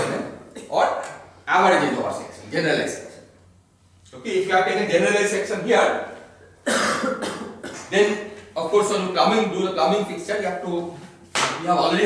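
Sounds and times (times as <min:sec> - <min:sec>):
person coughing: 0:00.0 - 0:00.9, 0:06.6 - 0:07.9.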